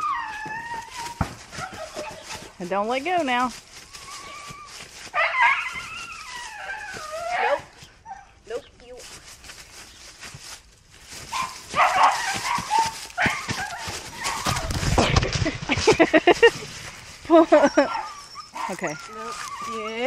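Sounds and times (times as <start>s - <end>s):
dog whining and barking: 0.0s - 2.4s, 4.0s - 8.3s, 11.4s - 14.8s, 17.5s - 20.0s.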